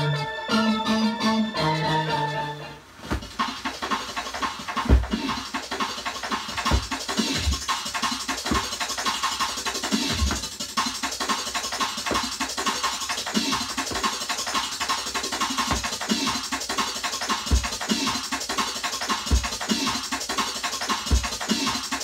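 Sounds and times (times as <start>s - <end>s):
drum and bass music: 0.0s - 22.0s.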